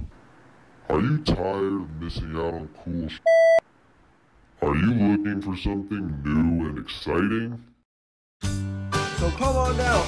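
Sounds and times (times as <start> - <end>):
censor bleep tone: 3.2 - 3.6.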